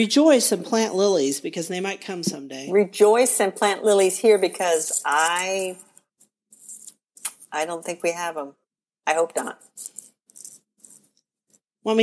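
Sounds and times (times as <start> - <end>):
woman speaking: 2.2 - 5.8, 7.5 - 9.6.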